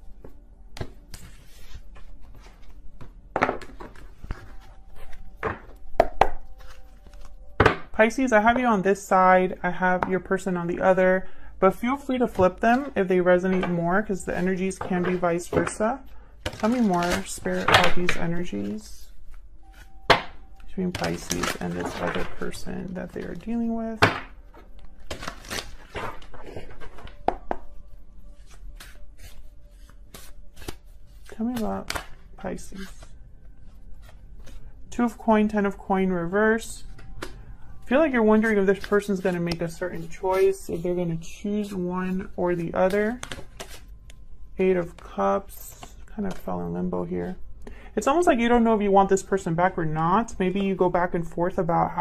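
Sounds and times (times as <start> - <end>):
cards being shuffled: 0.8 - 7.7, 16.4 - 18.5, 20.9 - 23.4, 28.4 - 33.1, 38.4 - 40.8, 42.5 - 43.9.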